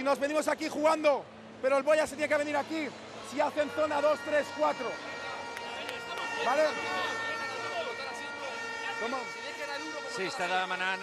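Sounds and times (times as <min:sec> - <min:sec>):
man talking: 0:00.0 - 0:05.1
hall background noise: 0:00.0 - 0:11.0.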